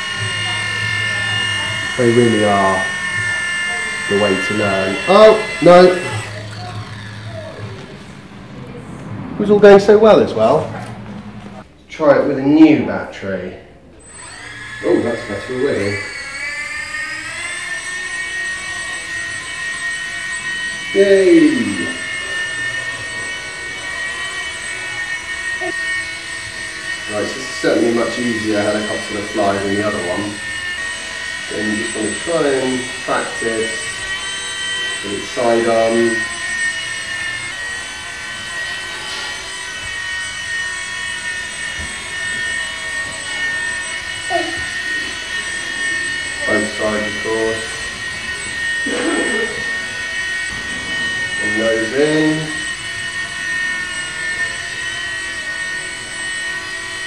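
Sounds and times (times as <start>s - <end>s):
toy helicopter rotor whining: 0.0s - 11.7s, 13.8s - 57.0s.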